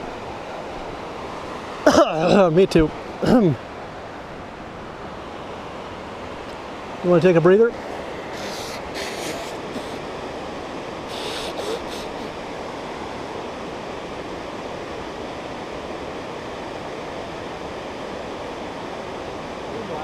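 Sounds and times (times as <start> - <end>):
mountain stream rushing: 0.0 - 20.0
nose blowing into tissue: 8.3 - 10.0, 11.1 - 12.4.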